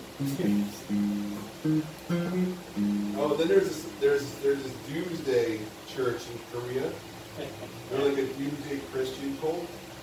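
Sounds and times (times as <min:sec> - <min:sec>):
guitar strumming chords: 0:00.0 - 0:04.3.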